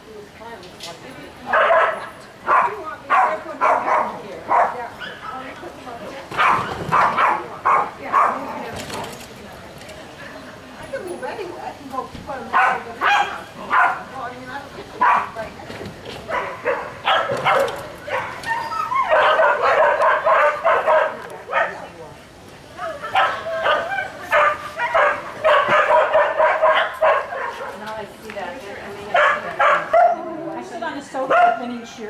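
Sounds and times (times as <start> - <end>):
dog barking: 1.5 - 5.5, 6.4 - 8.5, 12.5 - 14.1, 15.0 - 15.4, 16.3 - 18.4, 19.0 - 21.8, 23.0 - 27.8, 29.1 - 30.2, 31.3 - 31.7.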